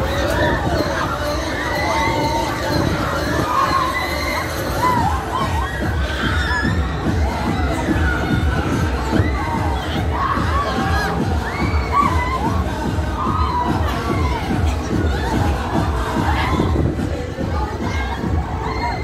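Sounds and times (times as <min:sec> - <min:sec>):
riders screaming and shouting: 0:00.0 - 0:19.0.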